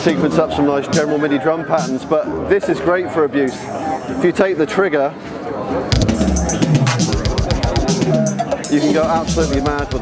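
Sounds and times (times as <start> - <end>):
fast stream of synthesized drum hits: 5.9 - 10.0.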